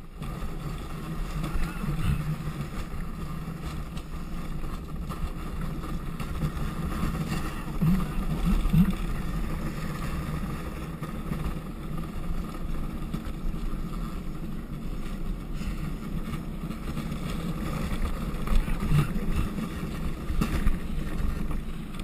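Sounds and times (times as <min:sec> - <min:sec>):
wind on microphone: 0:00.0 - 0:12.4
wheels rolling on concrete: 0:00.0 - 0:22.0.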